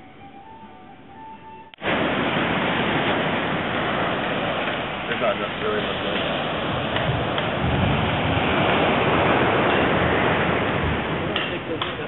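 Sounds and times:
ocean surf breaking: 1.8 - 12.0.

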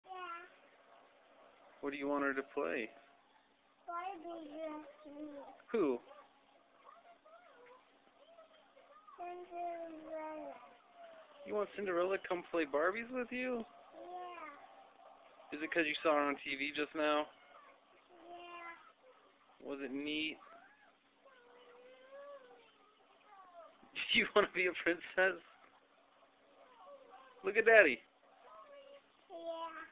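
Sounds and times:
man speaking: 19.6 - 20.4, 23.9 - 25.4.

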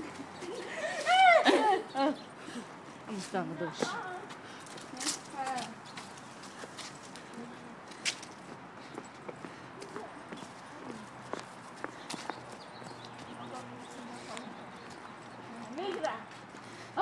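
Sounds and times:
outdoor background noise: 0.0 - 17.0
footsteps on pavement: 2.4 - 17.0.

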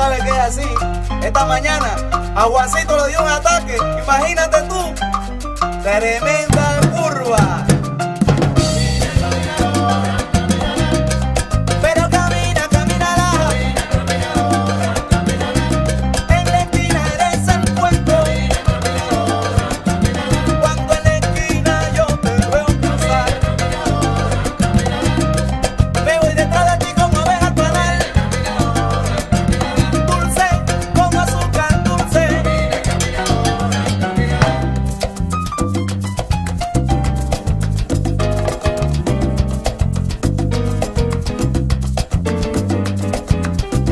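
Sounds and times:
bass line: 0.0 - 43.9
latin percussion: 0.0 - 43.9
melodic lead line: 0.2 - 35.6.

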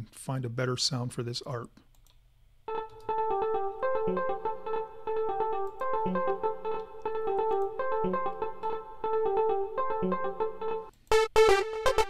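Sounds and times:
synth arpeggio: 2.7 - 12.0.

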